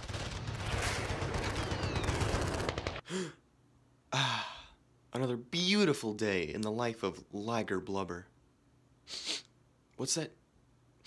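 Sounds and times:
man sighing: 0:03.0 - 0:03.5, 0:04.1 - 0:04.8.

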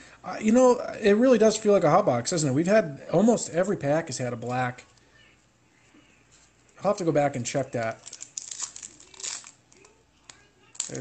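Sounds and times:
foil wrapper tearing and crinkling: 0:07.9 - 0:11.0.

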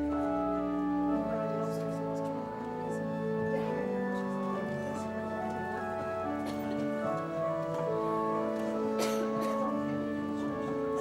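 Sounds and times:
organ playing held chords: 0:00.0 - 0:11.0.

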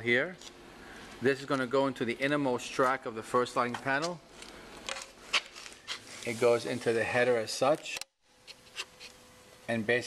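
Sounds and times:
soft rustling: 0:05.2 - 0:07.2.

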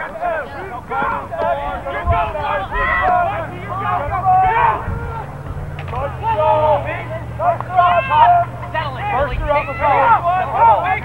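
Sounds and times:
people shouting: 0:00.0 - 0:11.0.

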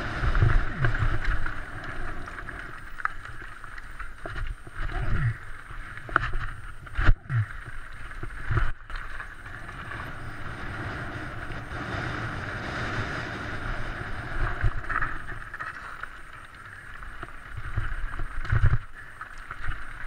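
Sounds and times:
wind rushing over microphone: 0:00.0 - 0:01.8, 0:09.5 - 0:15.3
bike rattling: 0:00.0 - 0:20.0
bike tyres crunching over stones: 0:00.0 - 0:20.0.

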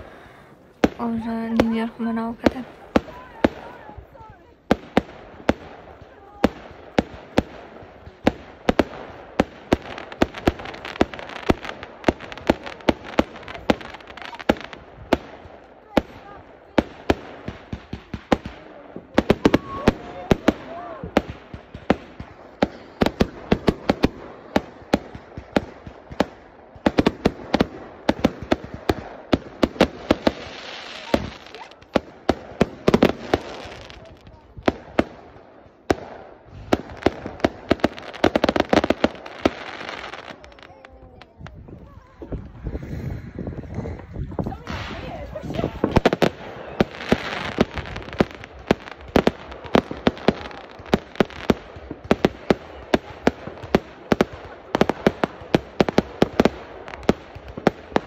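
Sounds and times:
fireworks bangs: 0:00.0 - 0:58.0
fireworks crackling: 0:00.0 - 0:58.0.

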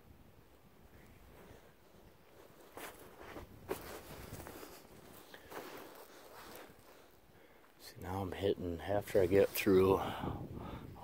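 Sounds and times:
footsteps in snow: 0:01.4 - 0:07.2.

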